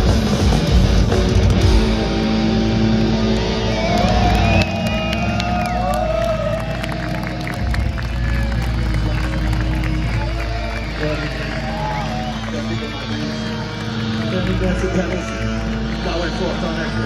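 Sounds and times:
heavy metal guitars and bass chord: 0.0 - 10.0
crowd cheering and shouting: 0.0 - 17.0.

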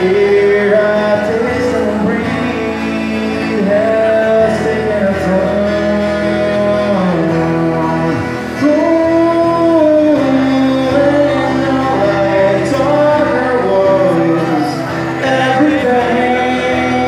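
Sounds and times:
acoustic guitar: 0.0 - 17.0
man singing: 0.0 - 17.0.

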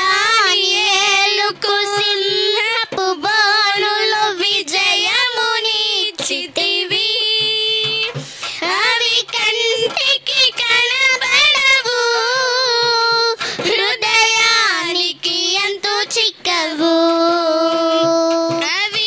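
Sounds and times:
girls singing devotional song: 0.0 - 19.0.

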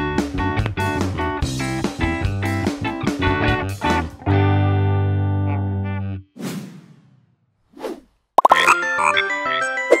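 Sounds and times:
plop sounds: 8.4 - 8.8
background music: 8.4 - 10.0.

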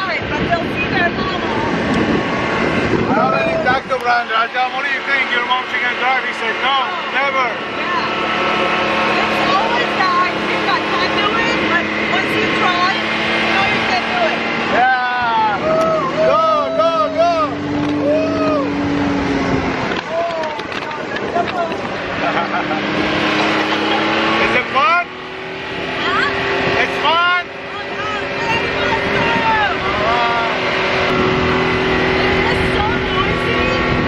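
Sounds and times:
utility vehicle engine running: 0.0 - 34.0
people whooping: 14.7 - 18.9.

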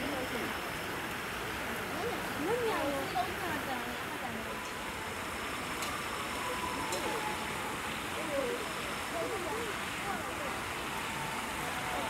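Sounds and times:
faint distant voices: 1.5 - 12.0.

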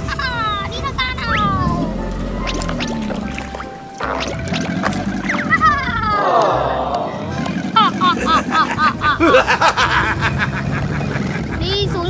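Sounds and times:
background music: 0.0 - 12.0
tones sliding downward: 1.2 - 9.0.

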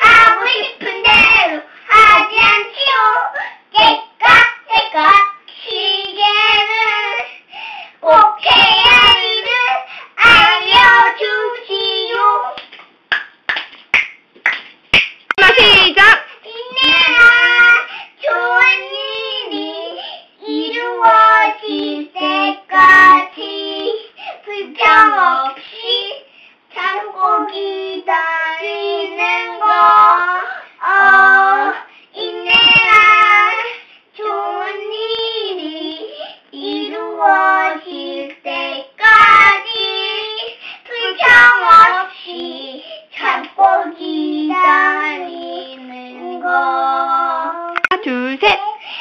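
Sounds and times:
children singing: 8.1 - 12.6, 16.5 - 26.2, 26.8 - 47.9
sharp pops: 47.8 - 48.2.

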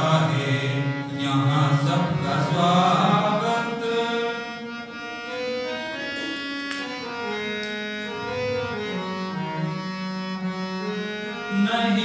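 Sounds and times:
man singing into microphone: 0.0 - 4.6, 11.4 - 12.0
harmonium reed tones: 0.0 - 12.0.

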